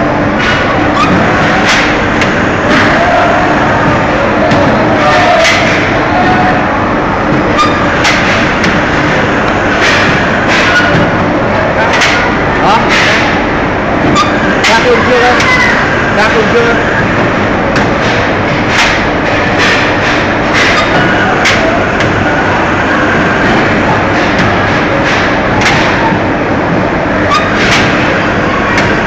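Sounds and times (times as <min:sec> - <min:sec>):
machine noise with low hum: 0:00.0 - 0:29.0
voices: 0:00.8 - 0:18.2.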